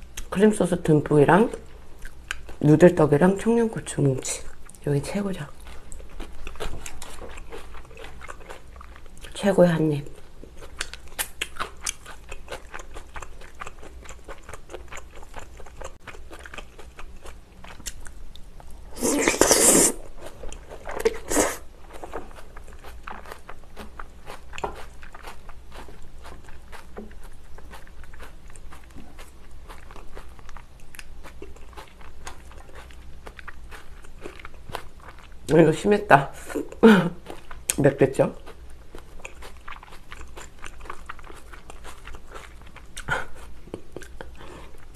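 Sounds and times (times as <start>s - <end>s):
person chewing wet food: 1.5s - 3.6s, 4.3s - 35.7s, 36.4s - 44.9s.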